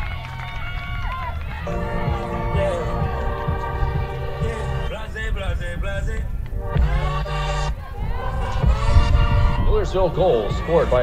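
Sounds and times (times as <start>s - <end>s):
high voices shouting and cheering: 0.0s - 11.0s
music sting with held tones: 1.7s - 4.9s
low rumble: 1.7s - 11.0s.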